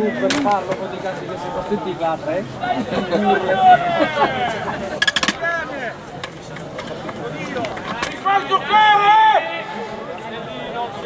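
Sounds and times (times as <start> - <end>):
men shouting: 1.3 - 5.9, 8.2 - 9.8.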